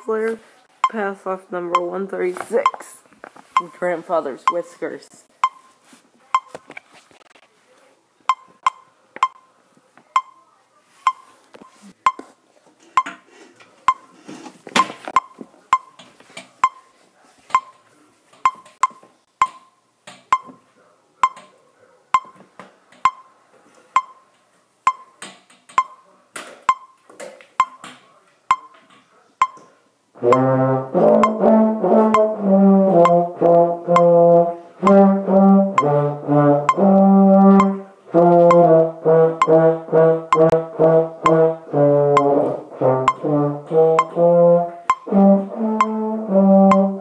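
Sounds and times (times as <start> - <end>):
metronome beeping: 0.8 - 5.8, 6.4 - 6.6, 8.3 - 9.5, 10.1 - 10.5, 11.1 - 12.3, 13.9 - 14.1, 14.8 - 16.0, 16.6 - 16.9, 17.5 - 17.8, 18.4 - 20.6, 21.2 - 21.5, 22.2 - 22.4, 23.0 - 23.4, 24.0 - 24.3, 24.9 - 25.2, 25.8 - 26.1, 26.7 - 27.0, 27.6 - 27.9, 28.5 - 28.8, 29.4 - 47.0
rustling and shuffling: 2.2 - 4.3, 5.0 - 8.0, 10.8 - 19.2.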